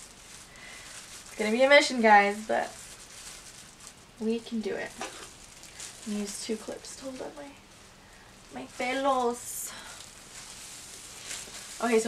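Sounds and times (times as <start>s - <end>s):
plastic gloves crinkling: 0.0s - 12.0s
person speaking: 8.5s - 9.9s.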